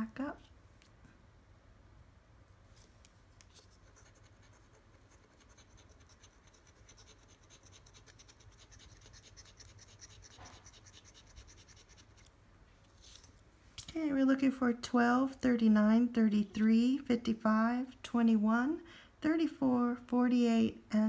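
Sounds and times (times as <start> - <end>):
coin scratching lottery ticket: 3.8 - 12.2.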